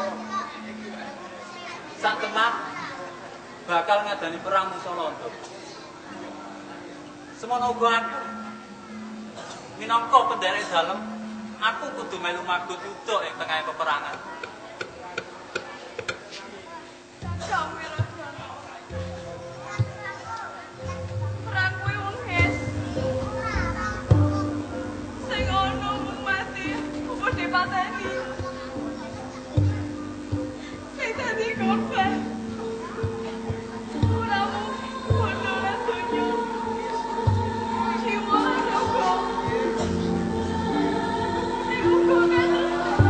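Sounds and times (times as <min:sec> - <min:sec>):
children calling out: 0:00.0 - 0:03.6, 0:18.9 - 0:43.0
gamelan music: 0:06.0 - 0:12.8, 0:17.0 - 0:43.0
person singing long held line: 0:20.7 - 0:43.0
low drum strokes: 0:20.8 - 0:43.0.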